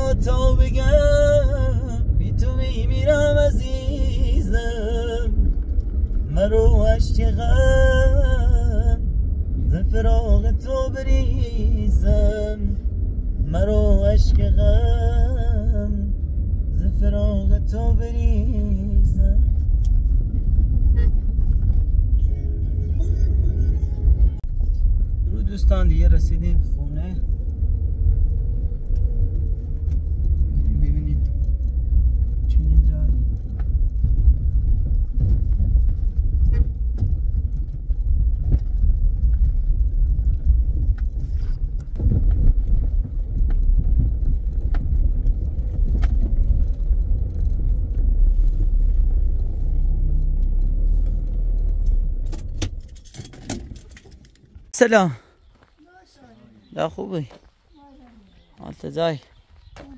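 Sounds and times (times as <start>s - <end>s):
engine and tyre rumble: 0.0s - 59.9s
rattles and clicks inside car: 0.0s - 59.9s.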